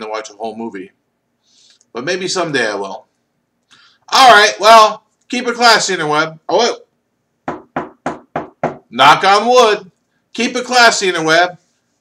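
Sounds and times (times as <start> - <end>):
knocking on wooden table: 7.5 - 8.9.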